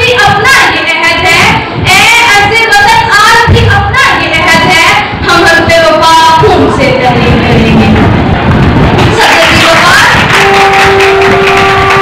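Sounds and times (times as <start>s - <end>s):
girl singing: 0.0s - 6.8s.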